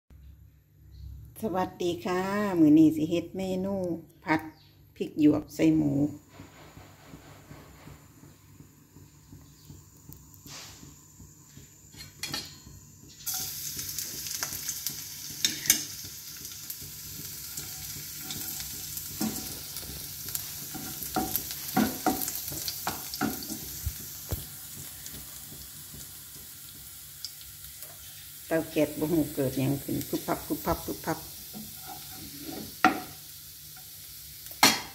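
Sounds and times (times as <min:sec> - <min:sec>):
garlic sizzling in hot oil: 0:05.8 - 0:34.9
spatula scraping pan: 0:15.4 - 0:16.0, 0:17.0 - 0:23.9, 0:30.2 - 0:33.2.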